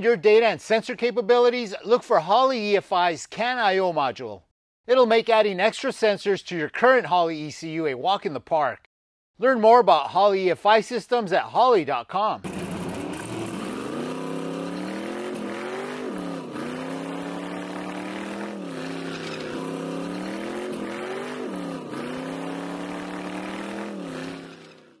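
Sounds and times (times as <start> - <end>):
car engine at high revs: 12.5 - 25.0.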